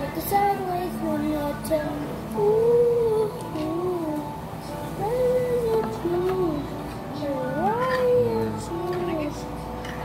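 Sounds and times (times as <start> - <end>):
boy singing wordless melody: 0.0 - 9.7.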